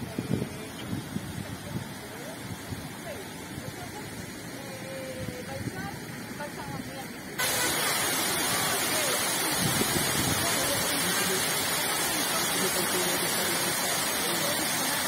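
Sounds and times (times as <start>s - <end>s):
water rushing and spraying: 0.0s - 15.0s.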